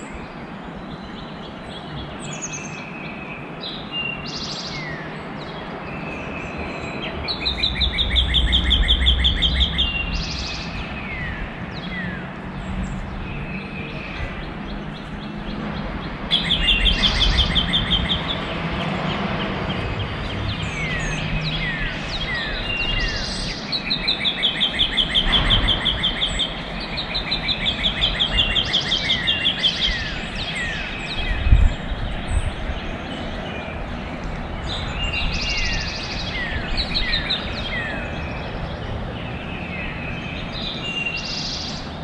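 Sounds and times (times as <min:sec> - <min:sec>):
songbirds singing: 0:00.0 - 0:42.0.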